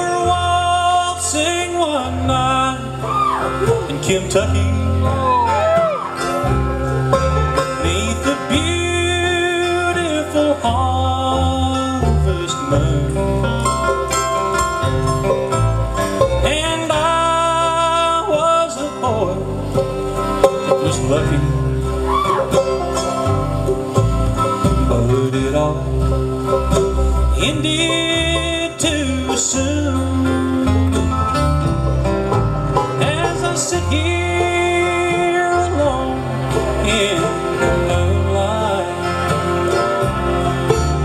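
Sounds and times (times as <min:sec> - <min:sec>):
bluegrass band playing waltz: 0:00.0 - 0:41.0.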